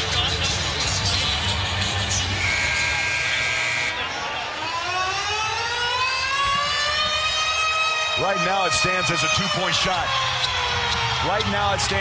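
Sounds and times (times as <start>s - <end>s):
crowd noise: 0.0s - 12.0s
siren-like sound effect: 2.3s - 12.0s.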